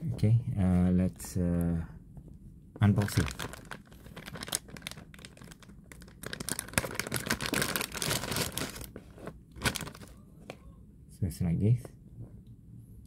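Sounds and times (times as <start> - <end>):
plastic bag crinkling: 2.9 - 10.1.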